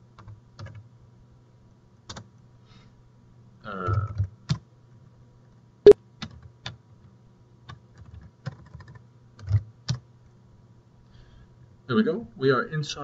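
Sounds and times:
typing on computer keyboard: 0.2 - 0.8, 2.1 - 2.3, 6.2 - 6.8, 7.7 - 10.0.

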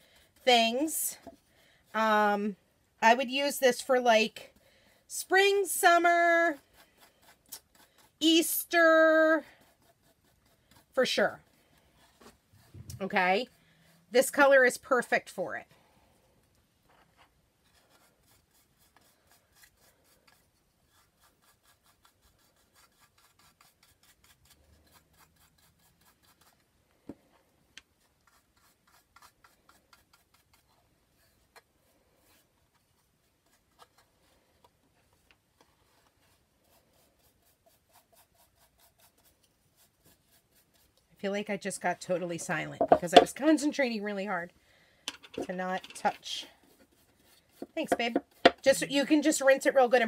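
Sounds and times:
paintbrush rubbing on wood: 5.3 - 14.6, 17.0 - 26.7, 27.9 - 43.9, 45.4 - 49.9.

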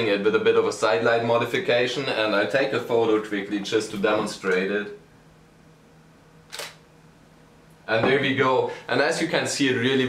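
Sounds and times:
camera shutter click: 6.5 - 6.8.

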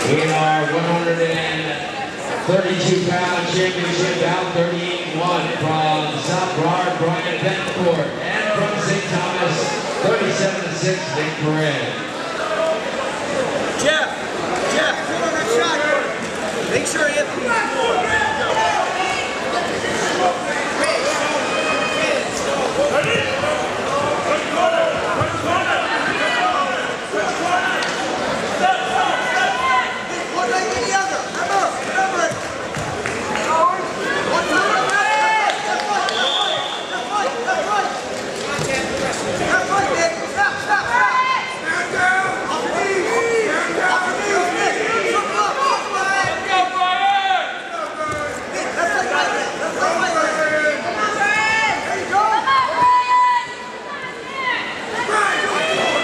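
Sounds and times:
crowd shouting and calling: 0.0 - 56.0.

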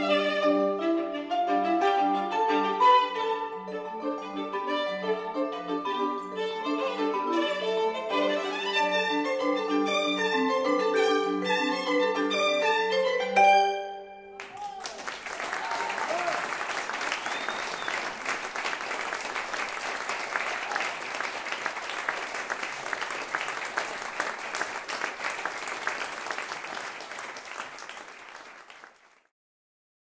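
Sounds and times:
audience applauding: 14.4 - 29.3.

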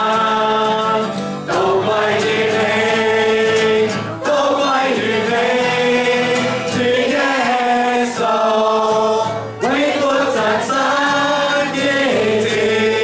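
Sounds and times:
acoustic guitar: 0.0 - 13.0
congregation singing: 0.0 - 13.0
man's voice leading singing: 0.0 - 13.0.

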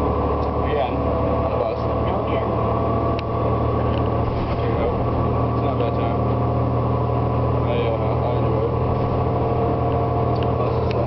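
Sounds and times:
bus engine drone: 0.0 - 11.0.

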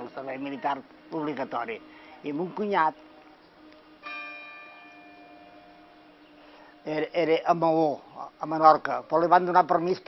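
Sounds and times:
faint bell hum: 3.9 - 8.3
church bell ringing: 4.0 - 7.2.

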